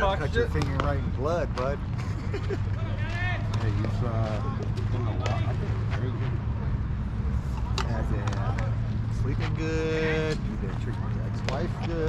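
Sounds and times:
people talking indistinctly: 0:00.0 - 0:12.0
steady low hum: 0:00.0 - 0:12.0.

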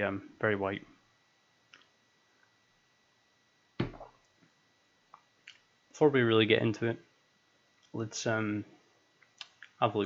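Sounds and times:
sharp knock: 0:03.8 - 0:04.1.

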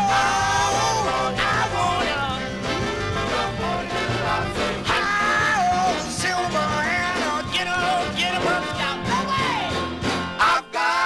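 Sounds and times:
instrumental rock and roll record: 0:00.0 - 0:11.0.

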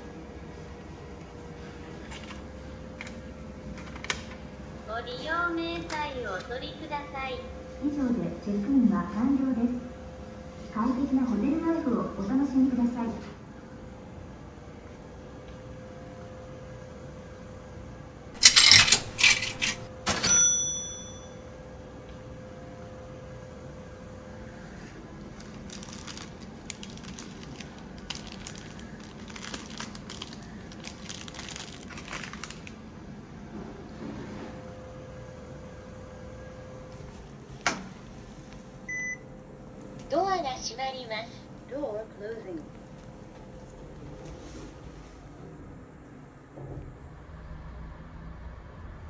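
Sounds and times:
steady low hum: 0:00.0 - 0:20.1, 0:20.8 - 0:49.0
rattling metallic clatter: 0:18.4 - 0:20.5
sharp bell-like clink: 0:20.1 - 0:21.4
card reader beep: 0:38.9 - 0:39.2.

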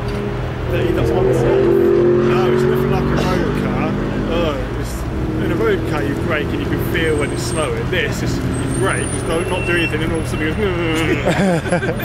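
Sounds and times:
car engine humming: 0:00.0 - 0:12.0
people talking: 0:00.7 - 0:12.0.

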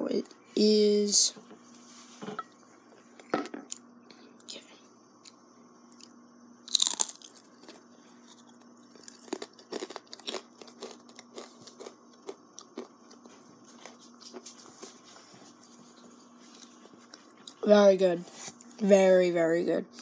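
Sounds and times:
pretzel crunching: 0:06.7 - 0:14.6.

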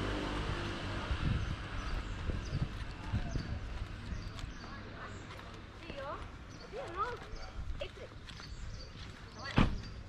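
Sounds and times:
street background noise: 0:00.0 - 0:10.0
footsteps on pavement: 0:01.7 - 0:09.9.

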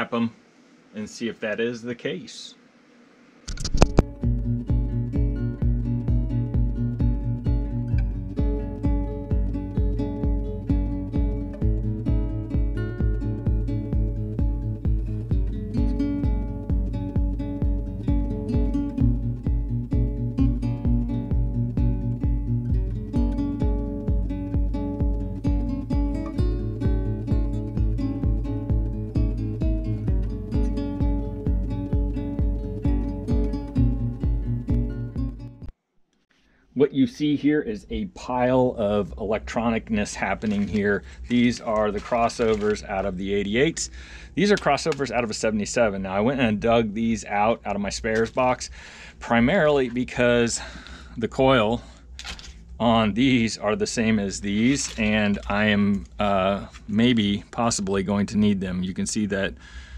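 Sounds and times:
guitar music over low beat: 0:03.5 - 0:35.8, 0:39.6 - 0:50.5, 0:53.8 - 0:59.4.

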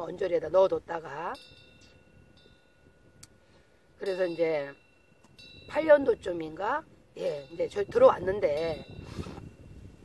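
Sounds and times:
faint bell-like ringing tones: 0:00.0 - 0:10.0.

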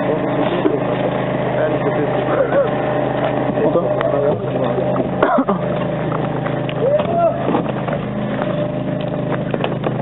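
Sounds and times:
steady engine drone: 0:00.0 - 0:10.0.

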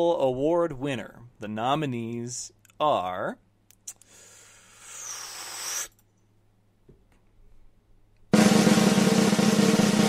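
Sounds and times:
rushing hiss-like noise: 0:04.5 - 0:06.0.

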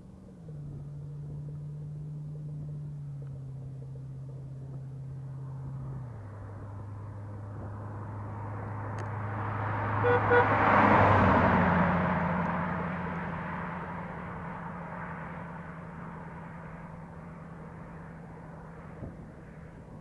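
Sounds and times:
car engine cruising: 0:00.0 - 0:20.0.

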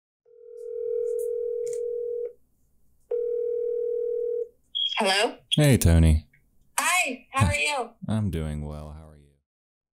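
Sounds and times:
telephone ringback tone: 0:00.3 - 0:02.4, 0:03.1 - 0:04.5.

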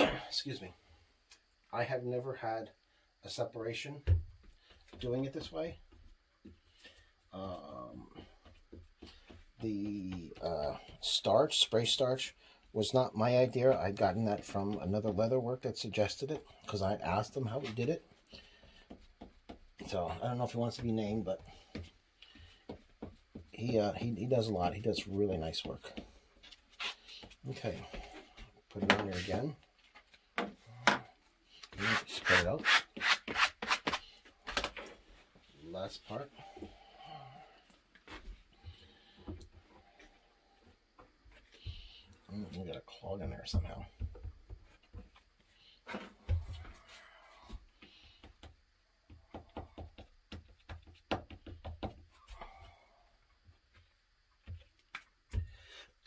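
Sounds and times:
light taps and knocks: 0:20.8 - 0:24.3.

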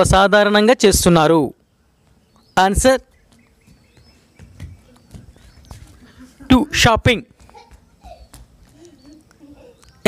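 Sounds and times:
faint knocks and taps: 0:03.3 - 0:06.0.

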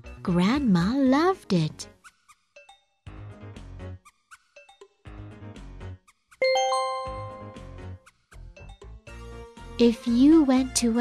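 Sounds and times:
bell-like chime: 0:06.4 - 0:07.8.

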